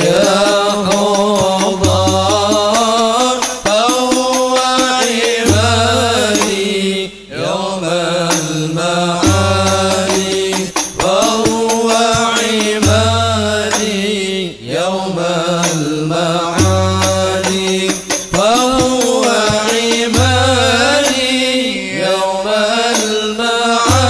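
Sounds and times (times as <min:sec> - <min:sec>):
frame drum: 0:00.0 - 0:06.8, 0:09.2 - 0:14.0, 0:16.6 - 0:21.3
voices singing long melodic phrases: 0:00.0 - 0:24.0.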